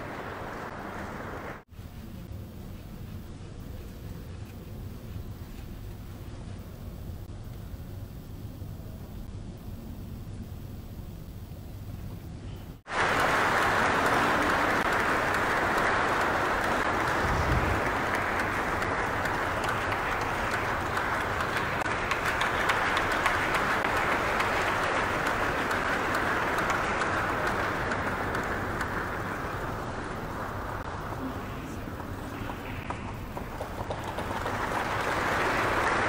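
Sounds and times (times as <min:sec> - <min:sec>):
audience applauding: 0:00.0 - 0:01.7, 0:12.9 - 0:36.0.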